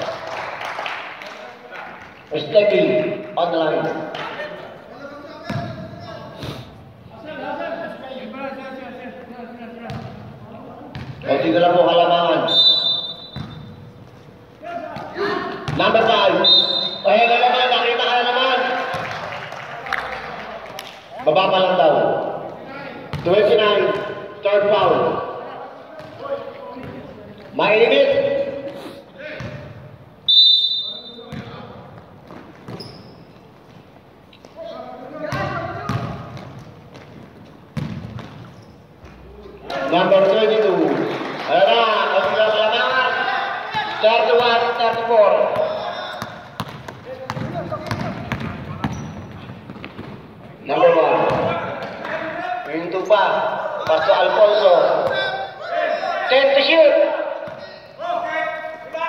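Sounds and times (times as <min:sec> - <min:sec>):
voices in a hall: 0:00.0 - 0:59.0
basketball bouncing on court floor: 0:05.5 - 0:05.9, 0:09.8 - 0:10.2, 0:10.9 - 0:11.2, 0:13.3 - 0:13.8, 0:18.9 - 0:19.2, 0:23.1 - 0:24.2, 0:31.3 - 0:33.1, 0:35.3 - 0:38.5, 0:43.7 - 0:50.6, 0:51.2 - 0:52.0
referee's whistle blast: 0:12.4 - 0:13.7, 0:16.4 - 0:17.1, 0:30.3 - 0:31.3.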